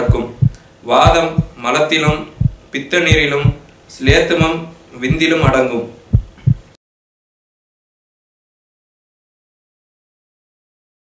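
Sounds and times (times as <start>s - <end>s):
heartbeat thumps: 0.0s - 6.8s.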